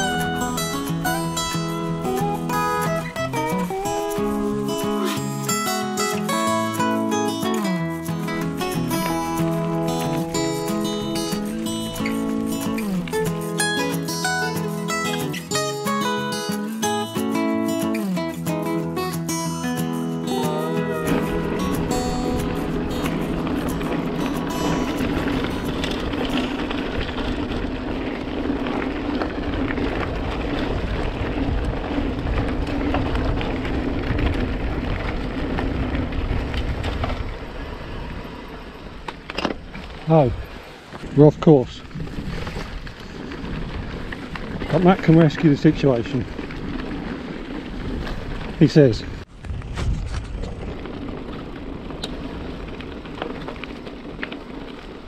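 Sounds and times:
wind on microphone: 0:00.0 - 0:05.7, 0:20.2 - 0:45.3, 0:46.1 - 0:55.0
acoustic guitar music: 0:00.0 - 0:29.1
bike tyres rolling on dirt: 0:00.0 - 0:55.0
low hum: 0:19.0 - 0:41.0.

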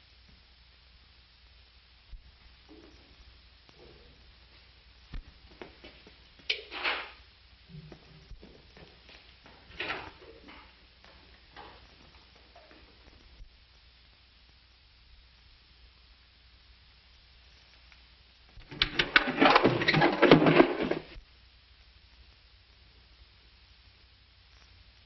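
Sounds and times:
soundtrack hiss: 0:00.0 - 0:18.7, 0:21.1 - 0:25.0
knocks of things handled: 0:18.6 - 0:21.2
rustling scrapes: 0:18.6 - 0:21.2.

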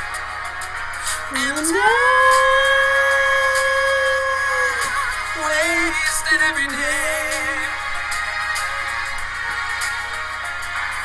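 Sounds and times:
backing music: 0:00.0 - 0:11.0
person singing a high note: 0:01.3 - 0:07.7.

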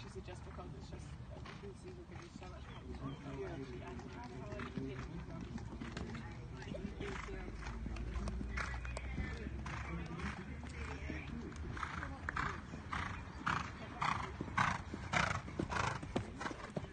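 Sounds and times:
horse cantering on sand: 0:00.0 - 0:16.9.

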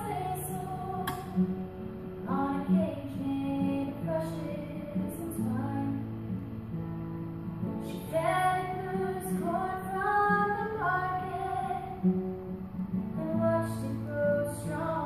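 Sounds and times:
woman singing: 0:00.0 - 0:06.2, 0:07.6 - 0:12.2, 0:13.0 - 0:15.0
strummed acoustic guitar: 0:00.0 - 0:15.0.

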